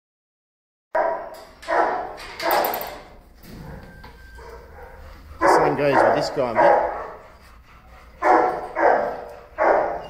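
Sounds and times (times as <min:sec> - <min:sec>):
dog barking: 0:01.0 - 0:02.9, 0:04.4 - 0:07.2, 0:08.2 - 0:10.0.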